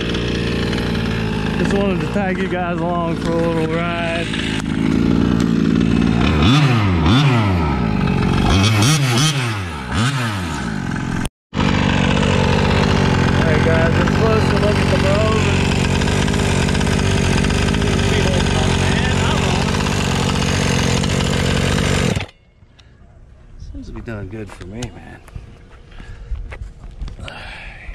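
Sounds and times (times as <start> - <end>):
two-stroke engine revving: 0.0 - 22.4.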